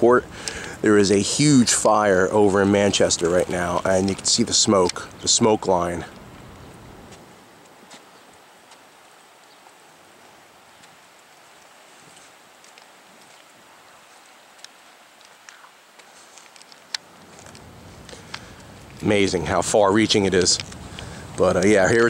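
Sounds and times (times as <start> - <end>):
faint steady hiss: 0.0 - 22.0
light clicks and taps: 14.5 - 19.1, 20.1 - 22.0.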